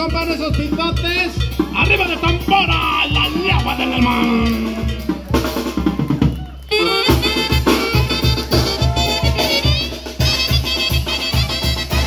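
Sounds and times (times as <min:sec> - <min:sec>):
bass drum beat: 0:00.0 - 0:12.0
brass band playing: 0:00.0 - 0:12.0.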